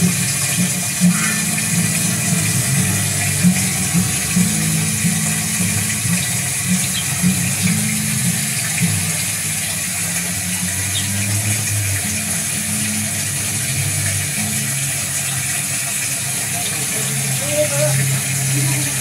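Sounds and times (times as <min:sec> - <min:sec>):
fountain water splashing: 0:00.0 - 0:19.0
low changing notes: 0:00.0 - 0:19.0.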